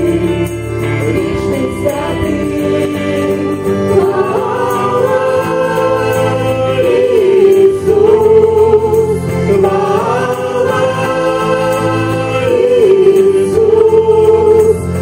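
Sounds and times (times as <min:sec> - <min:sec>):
vocal ensemble singing in harmony: 0:00.0 - 0:15.0.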